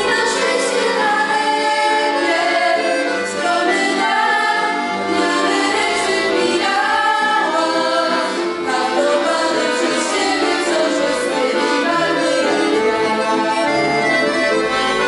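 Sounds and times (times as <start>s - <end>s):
young voices singing together: 0.0s - 13.2s
piano accordions: 0.0s - 15.0s.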